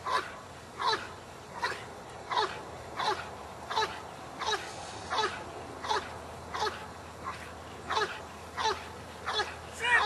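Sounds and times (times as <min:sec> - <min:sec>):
dog whining: 0:00.0 - 0:09.6.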